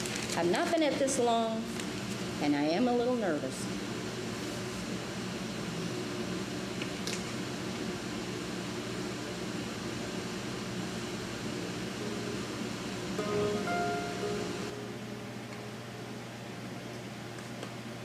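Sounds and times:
low room hum: 0.0s - 18.0s
mandolin notes: 13.2s - 14.7s.

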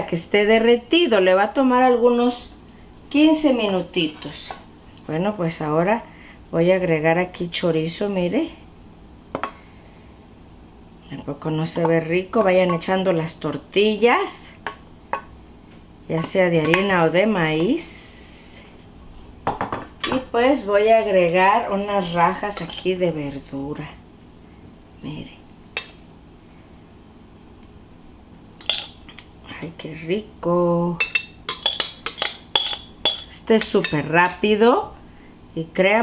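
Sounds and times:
faint room noise: 0.0s - 36.0s
faint steady hum: 0.0s - 36.0s
metal tongs clinking on dish: 28.6s - 29.1s, 31.0s - 34.4s.

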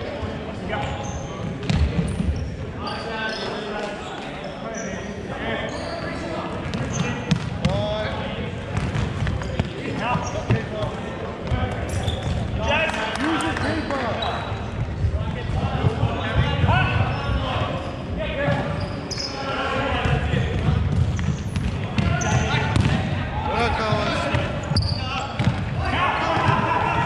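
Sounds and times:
shoes squeaking: 17.0s - 19.6s, 23.8s - 25.4s
players shouting: 22.0s - 27.0s.

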